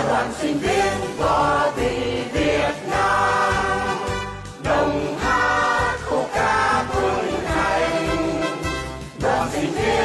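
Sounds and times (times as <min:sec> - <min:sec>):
choir singing: 0:00.0 - 0:10.0
instrumental accompaniment: 0:00.0 - 0:10.0.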